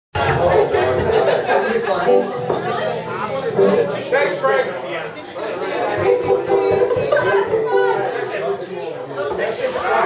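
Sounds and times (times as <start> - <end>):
people talking at once: 0.2 - 10.0.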